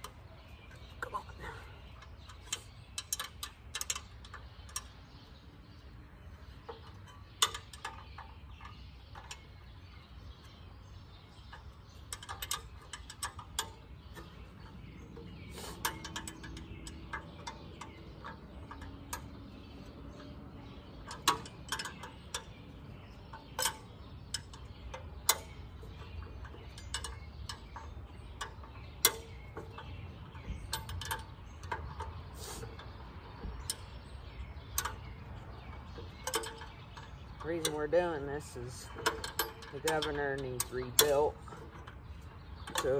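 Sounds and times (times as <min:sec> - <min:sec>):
hand tools clicking on metal: 0:11.5 - 0:20.4, 0:21.0 - 0:33.0, 0:34.7 - 0:42.9.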